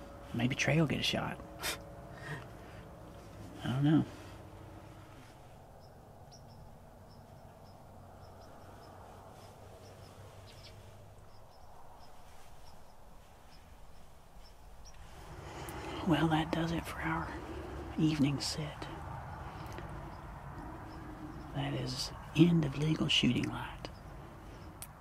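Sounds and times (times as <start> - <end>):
low background rumble: 0.0 - 25.0
small bird chirping: 3.2 - 25.0.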